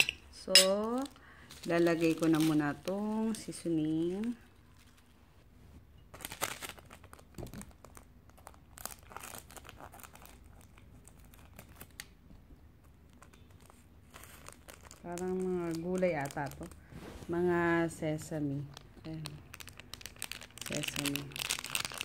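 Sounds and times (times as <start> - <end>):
plastic sachet crinkling: 0.7 - 5.1, 6.1 - 12.2, 13.0 - 16.9, 18.1 - 22.0.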